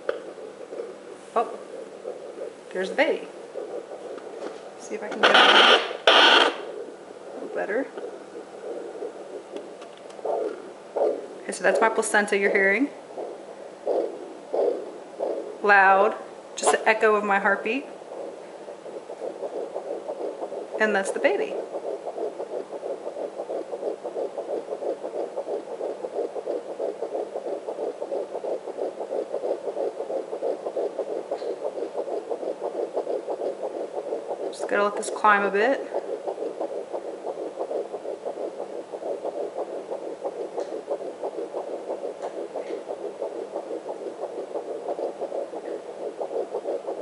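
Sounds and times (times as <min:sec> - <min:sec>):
fetal heartbeat on doppler: 0:00.0 - 0:47.0.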